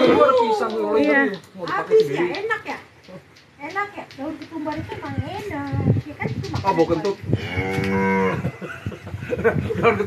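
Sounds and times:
cow mooing: 7.4s - 8.4s.

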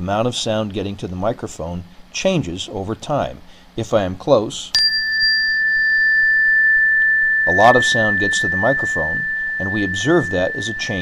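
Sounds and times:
high chime ringing: 4.8s - 11.0s.

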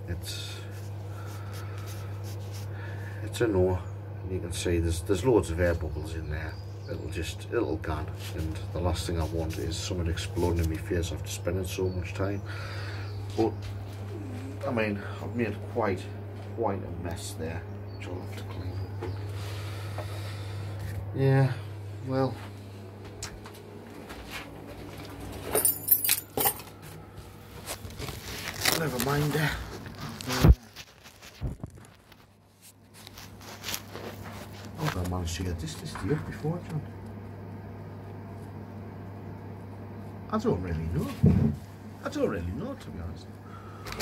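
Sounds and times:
steady low hum: 0.0s - 44.0s
person mumbling: 14.1s - 15.1s.

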